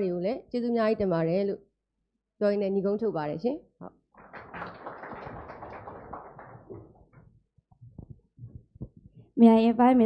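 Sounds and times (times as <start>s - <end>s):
audience applauding: 4.2s - 7.2s.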